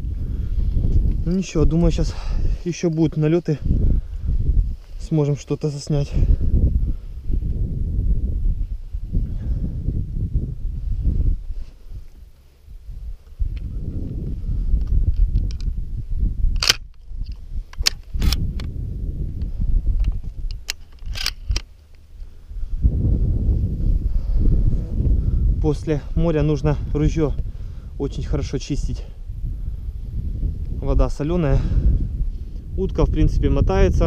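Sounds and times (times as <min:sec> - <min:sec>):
wind buffeting microphone: 0:00.0 - 0:34.0
metallic clicks of shells loading: 0:16.6 - 0:18.4, 0:20.5 - 0:21.7.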